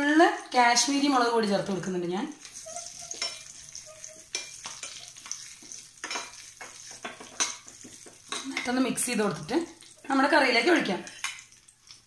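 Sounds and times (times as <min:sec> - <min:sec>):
spices sizzling in hot oil: 0:00.0 - 0:12.0
spoon scraping and clicking on pan: 0:02.4 - 0:08.9, 0:11.0 - 0:12.0.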